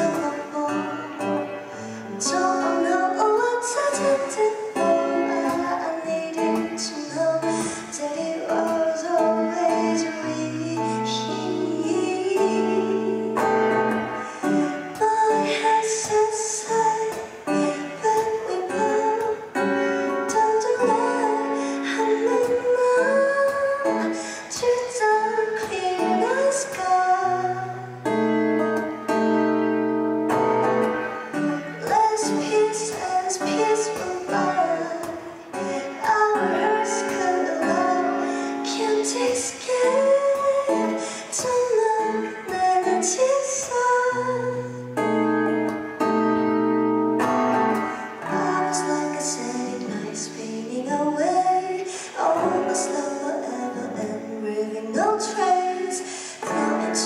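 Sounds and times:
acoustic guitar strumming: 0.0 - 57.0
woman singing into microphone: 0.0 - 57.0.

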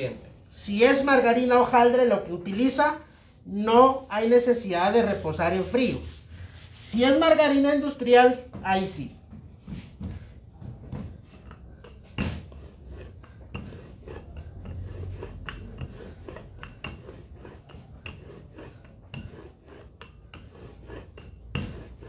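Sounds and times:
rolling pin rumbling on dough: 9.2 - 22.0.

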